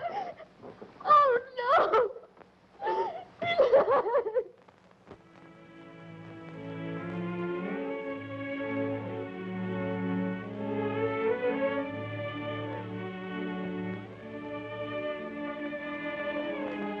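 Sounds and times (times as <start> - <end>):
woman crying and sobbing: 0.0 - 0.5, 1.1 - 4.6
orchestral string music: 5.2 - 17.0.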